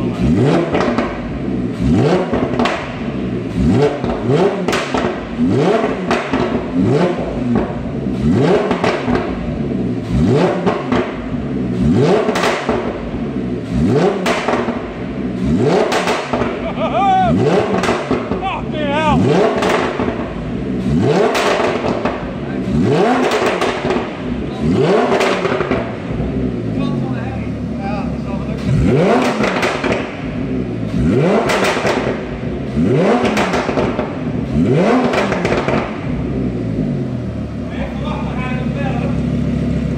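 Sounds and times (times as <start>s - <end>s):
exhaust crackles and pops: 0.0s - 9.6s, 10.3s - 13.2s, 13.8s - 27.2s, 28.6s - 36.3s
sports car engine revving: 0.0s - 39.9s.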